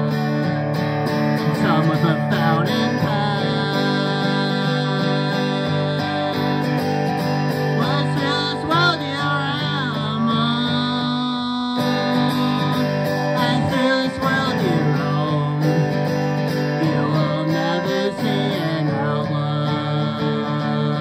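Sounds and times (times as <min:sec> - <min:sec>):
man singing: 0:00.0 - 0:00.6, 0:01.3 - 0:21.0
acoustic guitar strumming: 0:00.0 - 0:21.0.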